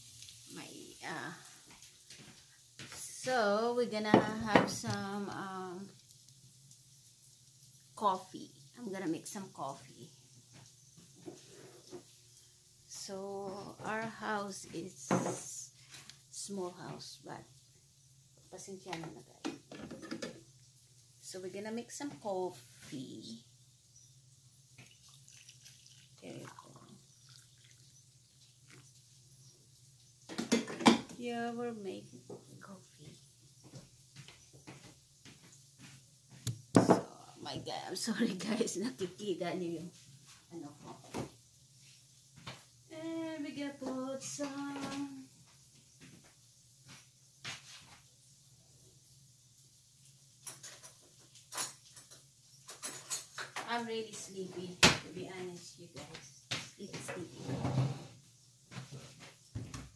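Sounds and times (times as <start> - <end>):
kitchen items knocking and clicking: 4.1 - 5.2, 19.0 - 20.5, 30.3 - 31.2, 36.5 - 37.2.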